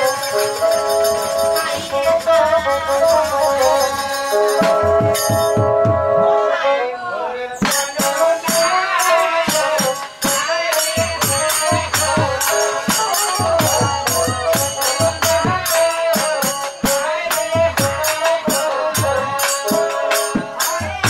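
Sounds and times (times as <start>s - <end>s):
fast jingling percussion: 0.0s - 5.8s, 7.6s - 21.0s.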